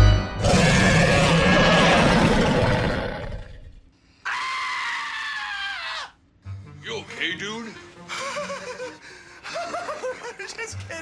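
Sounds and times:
person screaming high-pitched: 0:04.3 - 0:06.2.

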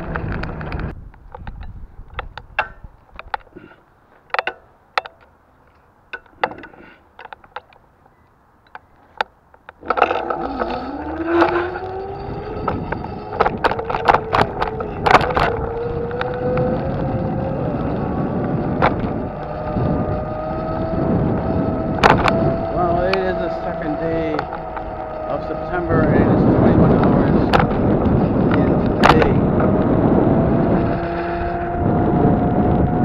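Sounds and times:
sharp clicks and rattles: 0:00.0 - 0:03.6, 0:04.2 - 0:07.9, 0:08.6 - 0:33.0
rough road noise: 0:00.0 - 0:33.0
motor whine: 0:09.8 - 0:33.0.

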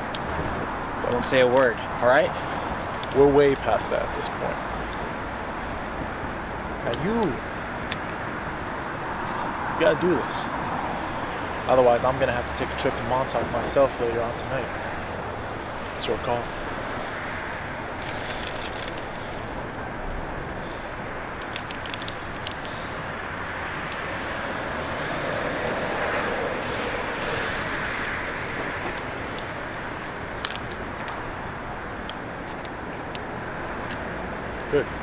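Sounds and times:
distant traffic: 0:00.0 - 0:35.0.

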